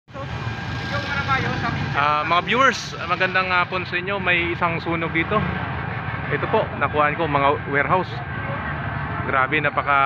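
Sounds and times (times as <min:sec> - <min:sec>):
faint people talking: 0:00.1 - 0:10.0.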